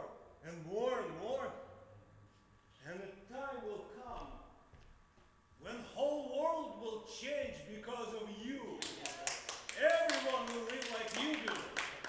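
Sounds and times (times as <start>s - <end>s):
sharp taps or claps: 8.8s - 12.0s.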